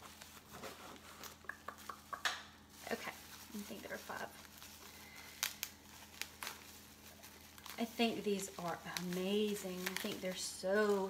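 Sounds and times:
plastic wrapping crinkling: 0:00.0 - 0:11.0.

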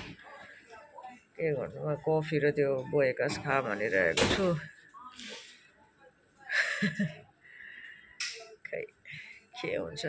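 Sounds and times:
woman talking: 0:00.0 - 0:07.4, 0:08.4 - 0:10.0.

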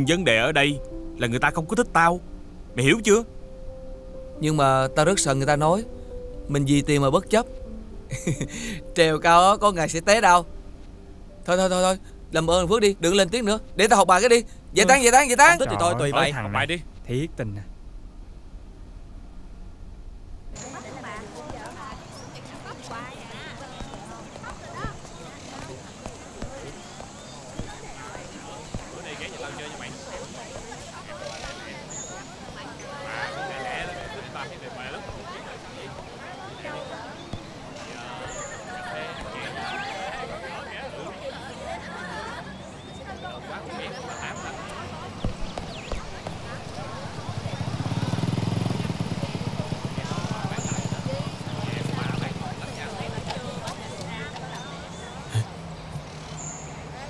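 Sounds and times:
birds chirping: 0:00.0 - 0:17.7, 0:20.6 - 0:57.0
indistinct voices: 0:11.5 - 0:17.6, 0:20.6 - 0:57.0
high chirping: 0:20.6 - 0:33.0, 0:44.0 - 0:56.8
small motorbike engine puttering: 0:45.2 - 0:56.6.

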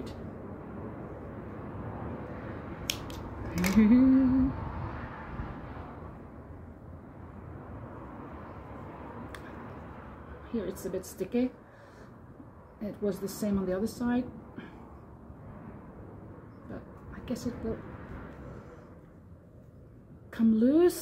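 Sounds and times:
woman humming: 0:03.5 - 0:04.6.

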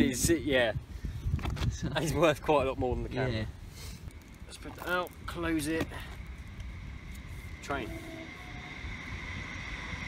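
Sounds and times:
distant train rumble: 0:02.8 - 0:10.0
steady high-pitched tone: 0:04.1 - 0:10.0.

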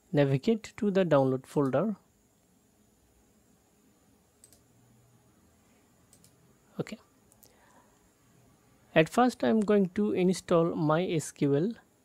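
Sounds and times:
computer mouse clicks: 0:04.4 - 0:04.7, 0:06.1 - 0:06.4.

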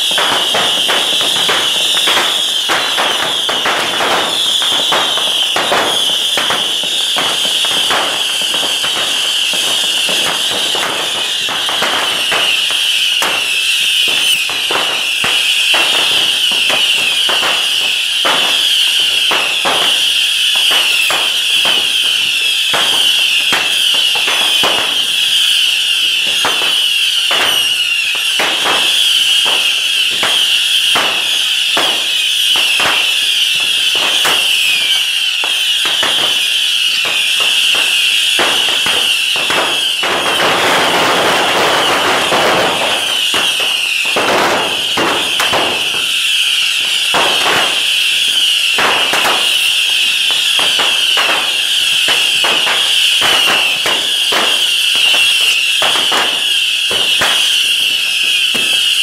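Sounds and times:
bottle rockets shrieking: 0:00.0 - 0:59.0
firework cracks and bangs: 0:00.0 - 0:59.0.

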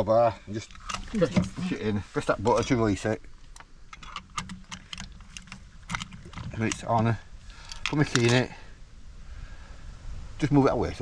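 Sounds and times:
lock box clicking and rattling: 0:03.6 - 0:07.0.

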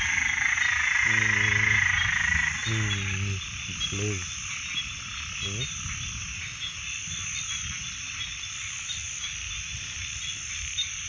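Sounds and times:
frogs trilling: 0:00.0 - 0:11.0
man speaking: 0:01.1 - 0:02.0, 0:02.6 - 0:04.3, 0:05.4 - 0:05.7.

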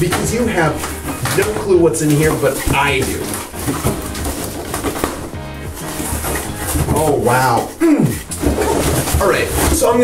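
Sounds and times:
packing paper rustling: 0:00.0 - 0:10.0.

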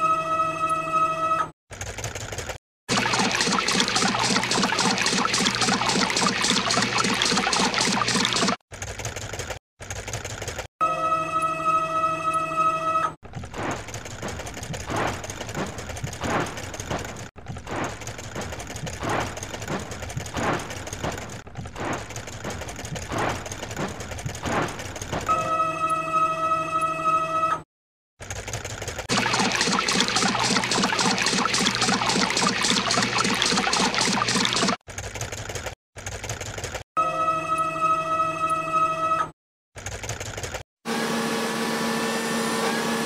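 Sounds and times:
spinning scrubbing brush swishing: 0:02.9 - 0:08.6, 0:29.1 - 0:34.8.

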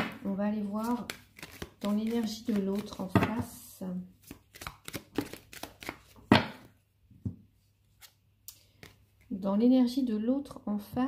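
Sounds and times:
cards being shuffled: 0:00.8 - 0:03.2, 0:04.2 - 0:06.7
cards slapping: 0:00.8 - 0:03.4, 0:04.2 - 0:06.7.

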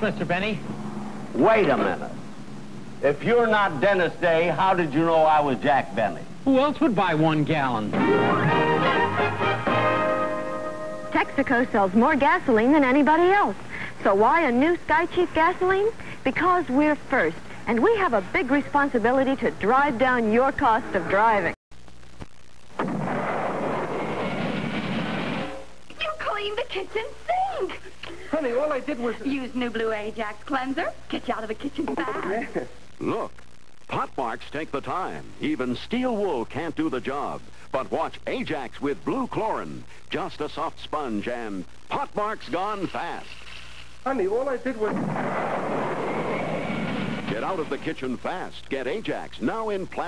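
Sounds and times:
steady rushing noise: 0:45.0 - 0:47.8.

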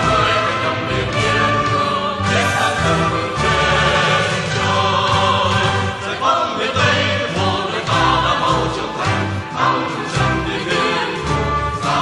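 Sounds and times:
choir singing with instruments: 0:00.0 - 0:12.0.

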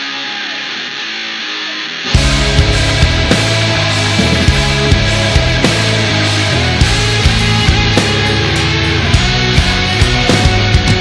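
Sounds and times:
strummed electric guitar: 0:00.0 - 0:11.0.

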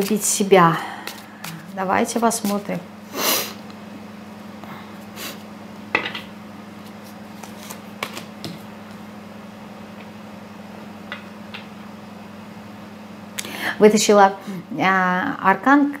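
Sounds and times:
steady low hum: 0:00.0 - 0:16.0
cards clicking and tapping: 0:07.4 - 0:09.0.

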